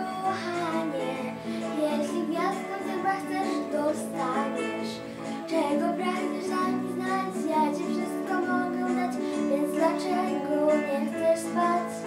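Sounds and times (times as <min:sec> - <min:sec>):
girl singing a lullaby: 0:00.0 - 0:12.0
instrumental accompaniment: 0:00.0 - 0:12.0.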